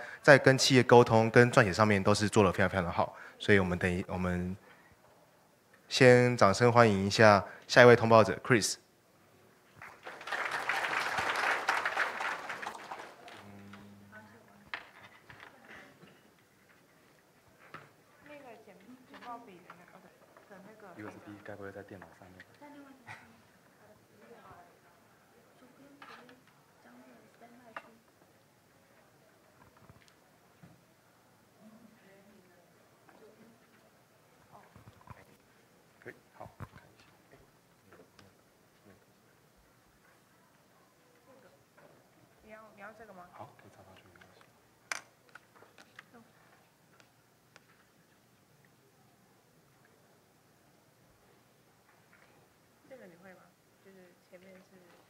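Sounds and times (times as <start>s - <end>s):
audience applauding: 9.8s - 13.9s.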